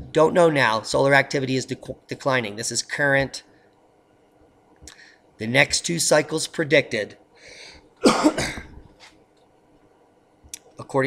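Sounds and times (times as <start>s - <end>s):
man coughing: 8.0s - 8.8s.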